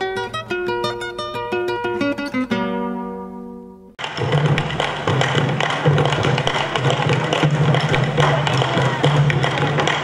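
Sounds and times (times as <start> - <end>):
hand and stick drumming: 4.0 - 10.0.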